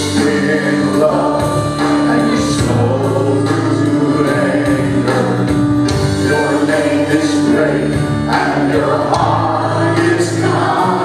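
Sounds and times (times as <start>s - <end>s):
worship singers with band: 0.0s - 11.0s.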